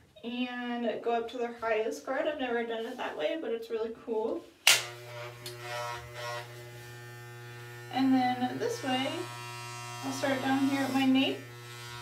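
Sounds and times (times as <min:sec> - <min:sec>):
hair clippers buzzing: 0:04.7 - 0:12.0.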